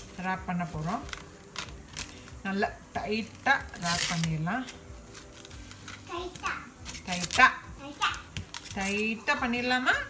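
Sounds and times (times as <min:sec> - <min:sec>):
plastic cling wrap rustling: 0:00.0 - 0:09.9.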